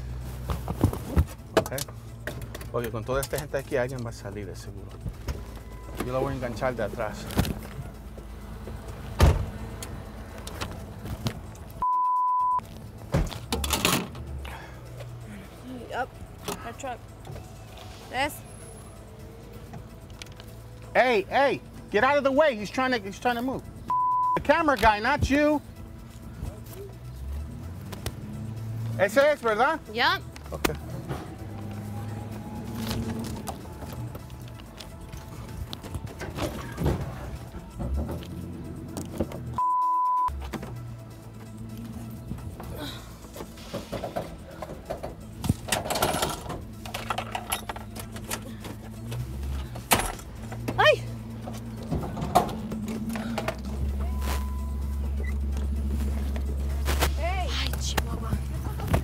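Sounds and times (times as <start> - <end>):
background music: 0.0 - 59.0
tow truck driving: 0.0 - 59.0
vehicle door shutting: 9.1 - 9.6
censor bleep: 11.8 - 12.6, 23.9 - 24.4, 39.6 - 40.3, 54.1 - 55.4.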